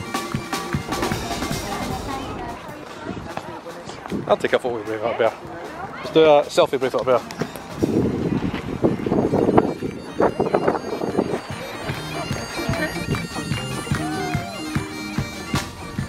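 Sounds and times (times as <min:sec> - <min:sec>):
bagpipes playing a tune: 0:07.0 - 0:16.0
voices and laughter: 0:11.3 - 0:14.6.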